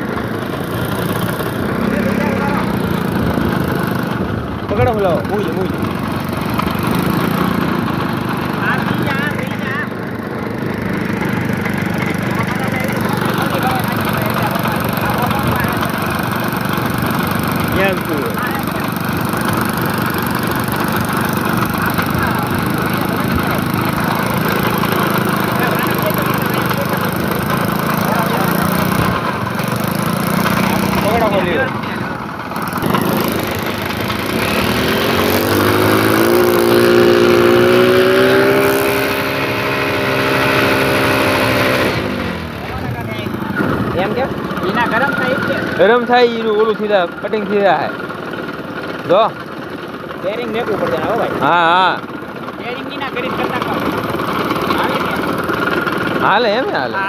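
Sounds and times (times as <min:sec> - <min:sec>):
propeller splashing water: 0:00.0 - 0:57.0
small motorcycle engine: 0:00.0 - 0:57.0.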